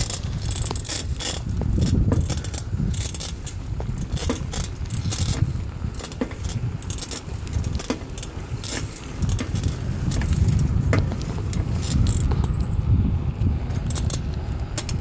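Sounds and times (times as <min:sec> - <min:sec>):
bicycle chain rattling and clicking: 0:00.0 - 0:15.0
bicycle rumbling on pavement: 0:00.0 - 0:15.0.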